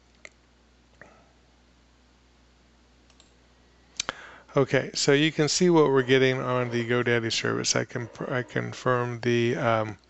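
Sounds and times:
steady low hum: 0:00.0 - 0:10.0
clicks: 0:03.1 - 0:03.4.

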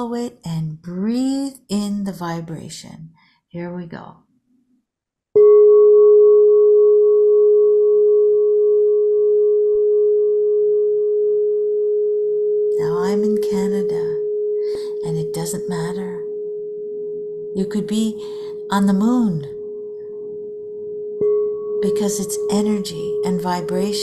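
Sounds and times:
singing bowl ringing: 0:05.4 - 0:13.3, 0:13.9 - 0:15.0, 0:16.2 - 0:17.6, 0:18.2 - 0:24.0.

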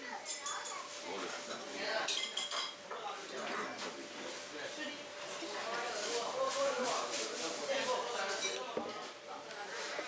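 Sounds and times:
dishes and cutlery clinking: 0:00.2 - 0:03.6, 0:08.2 - 0:09.2.

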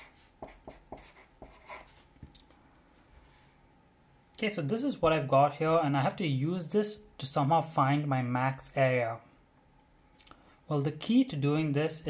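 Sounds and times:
marker writing on paper: 0:00.0 - 0:02.0.

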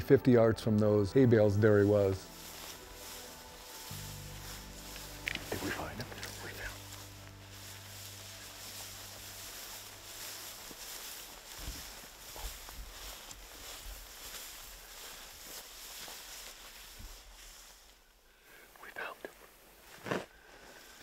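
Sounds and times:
footsteps through tall grass: 0:00.7 - 0:18.2, 0:19.6 - 0:21.0
people whispering: 0:03.7 - 0:11.1, 0:18.5 - 0:19.5
boots thudding: 0:09.0 - 0:16.2.

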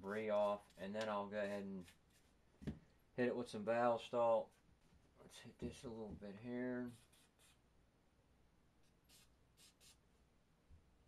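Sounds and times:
faint scratchy handling sounds: 0:00.0 - 0:02.8.

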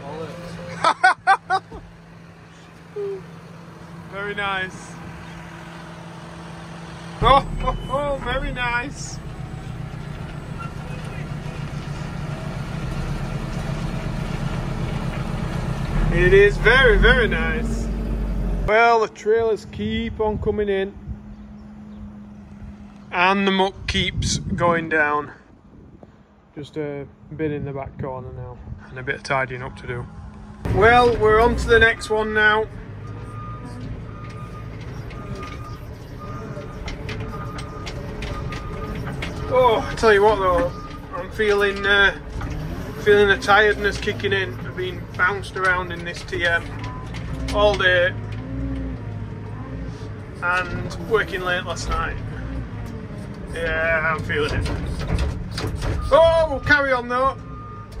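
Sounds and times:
diesel engines humming: 0:00.0 - 0:27.4, 0:28.3 - 0:58.0
short beeps: 0:07.4 - 0:08.3
machine rattles and knocks: 0:36.6 - 0:49.0, 0:54.2 - 0:56.3.

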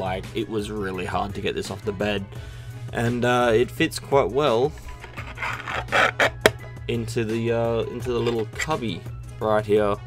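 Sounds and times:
background music: 0:00.0 - 0:10.0
plastic drawer scraping: 0:04.8 - 0:06.6.

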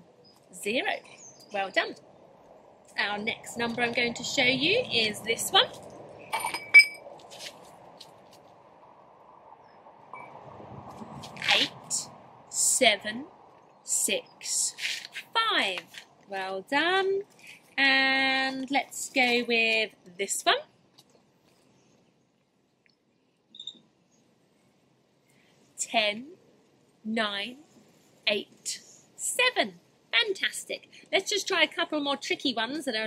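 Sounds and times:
faint background hiss: 0:00.0 - 0:33.0
faint outdoor background: 0:00.0 - 0:33.0
faint bird chirps: 0:23.1 - 0:24.2.

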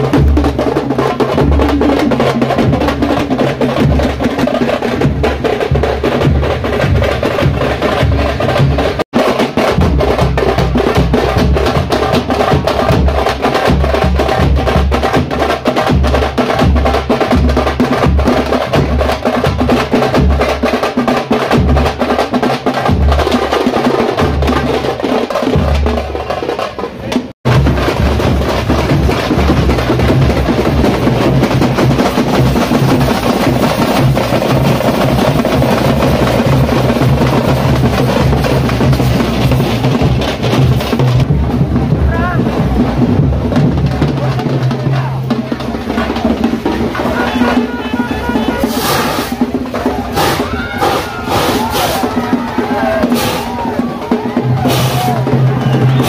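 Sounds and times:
deep drum beats: 0:00.0 - 0:56.0.

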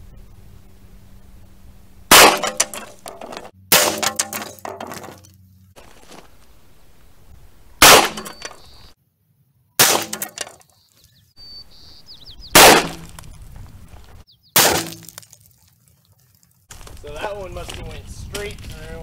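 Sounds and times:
revolver gunshots: 0:02.1 - 0:04.6, 0:07.8 - 0:08.6, 0:09.8 - 0:10.5, 0:12.6 - 0:13.2, 0:14.6 - 0:15.1.

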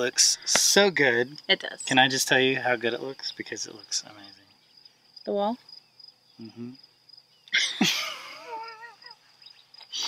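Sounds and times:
crickets chirping: 0:00.0 - 0:10.0
person laughing softly: 0:07.5 - 0:09.2.

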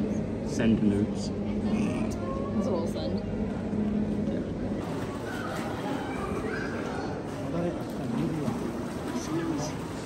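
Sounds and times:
murmur of background voices: 0:00.0 - 0:10.0
steady low hum: 0:00.0 - 0:10.0.

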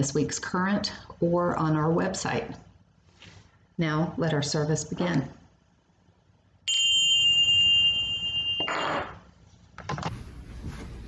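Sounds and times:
small cymbals ringing: 0:06.7 - 0:08.8.

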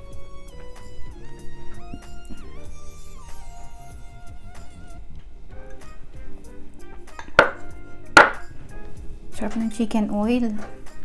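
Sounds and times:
background music: 0:00.0 - 0:11.0
tableware knocking on table: 0:07.2 - 0:08.5.

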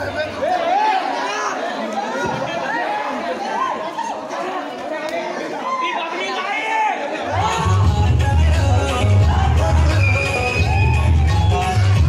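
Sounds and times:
crowd of men talking and calling: 0:00.0 - 0:12.0.

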